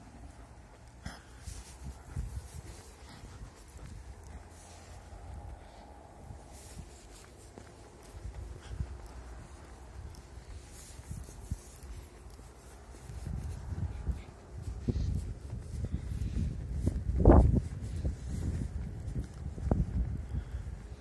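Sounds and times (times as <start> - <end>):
footsteps on paved street: 0.0 - 21.0
wind rumbling on microphone: 0.0 - 21.0.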